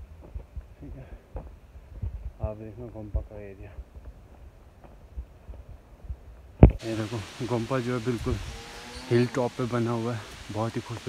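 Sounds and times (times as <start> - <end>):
dull low thumps: 0.0 - 7.4
steady hiss: 6.6 - 11.0.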